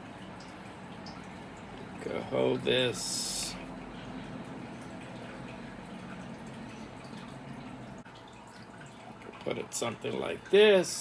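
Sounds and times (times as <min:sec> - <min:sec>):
low hum: 0:00.0 - 0:08.2.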